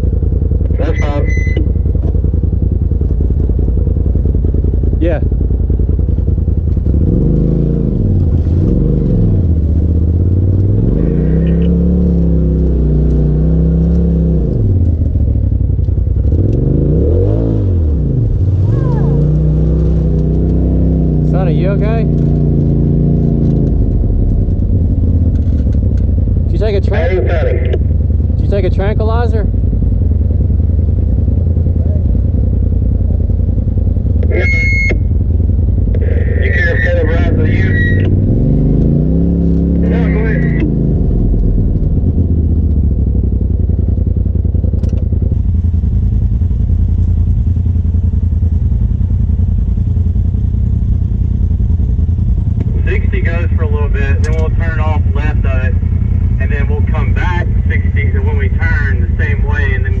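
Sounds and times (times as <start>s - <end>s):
vehicle engine revving: 0.0s - 60.0s
voices: 0.6s - 1.7s, 10.9s - 11.8s, 18.6s - 19.8s, 21.2s - 22.2s, 26.4s - 29.6s, 34.2s - 35.0s, 35.9s - 38.3s, 39.6s - 40.8s, 52.6s - 60.0s.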